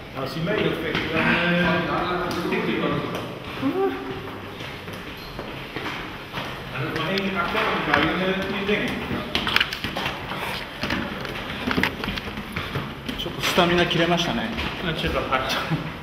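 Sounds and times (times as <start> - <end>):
men talking: 0.2 - 4.2, 6.7 - 9.5, 13.1 - 16.0.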